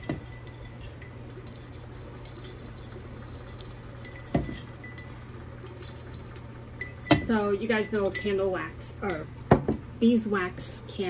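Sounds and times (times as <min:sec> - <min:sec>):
glassware clinking: 0:00.0 - 0:09.8.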